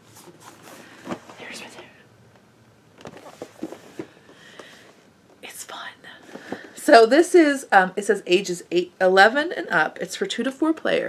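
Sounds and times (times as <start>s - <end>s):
woman whispering: 1.4s - 2.0s, 5.4s - 6.2s
woman speaking: 6.8s - 11.0s.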